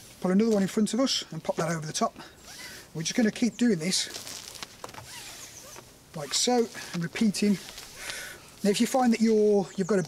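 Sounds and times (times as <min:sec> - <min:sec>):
rope rustling over jacket: 0:01.4 - 0:09.1.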